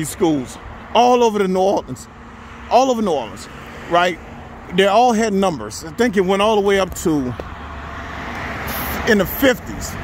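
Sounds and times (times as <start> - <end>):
car road noise: 0.0 - 10.0.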